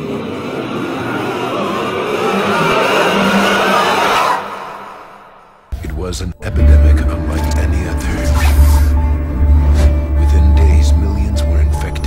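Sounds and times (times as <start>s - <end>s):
dense wash of noise: 0.0s - 5.4s
steady low drone: 5.7s - 12.0s.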